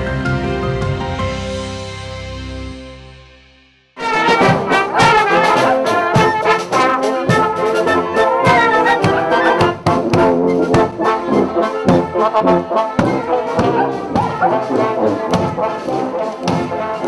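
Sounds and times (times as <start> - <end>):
marching brass band playing: 4.0 - 17.0
steady drum beat: 4.0 - 17.0.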